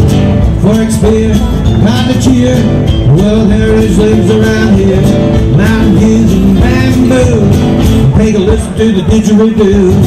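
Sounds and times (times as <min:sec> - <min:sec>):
acoustic guitar: 0:00.0 - 0:10.0
keyboard: 0:00.0 - 0:10.0
person singing: 0:00.6 - 0:10.0.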